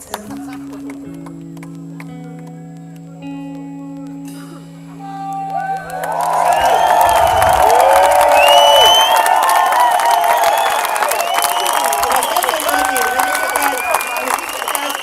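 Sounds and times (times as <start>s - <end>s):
electric guitar chord: 0.0s - 5.6s
crowd cheering and applauding: 5.0s - 15.0s.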